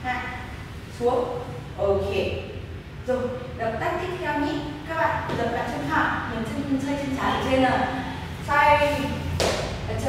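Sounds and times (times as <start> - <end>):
woman's voice: 1.0 - 2.5, 3.1 - 9.3.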